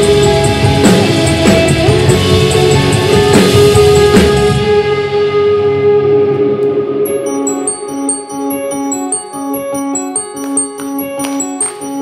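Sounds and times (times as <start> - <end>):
electric guitars ringing chords: 0.0 - 12.0.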